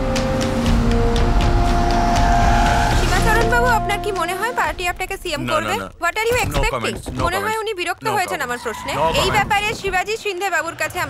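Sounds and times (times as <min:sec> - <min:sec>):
held music note: 0:00.0 - 0:05.8.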